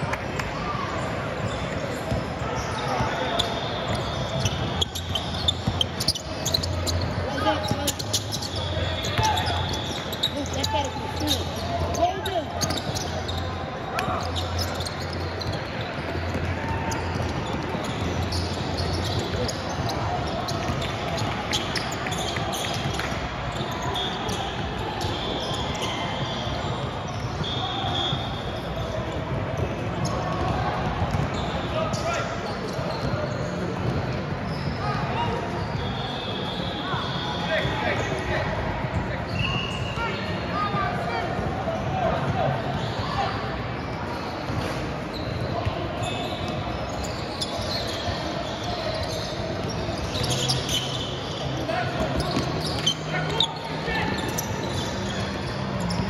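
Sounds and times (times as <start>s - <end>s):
sneaker squeaks: 0.0s - 56.0s
basketball bouncing on court: 3.4s - 10.2s, 14.2s - 23.7s, 29.2s - 31.5s, 52.0s - 53.1s.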